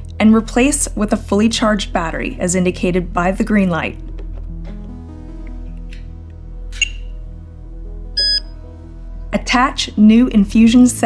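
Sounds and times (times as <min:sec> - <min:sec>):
soft background music: 0:00.0 - 0:11.0
short high electronic beep: 0:08.2 - 0:08.5.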